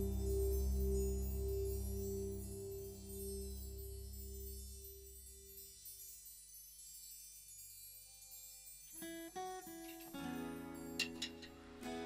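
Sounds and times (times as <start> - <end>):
guitar chord ringing: 0.0 - 5.1.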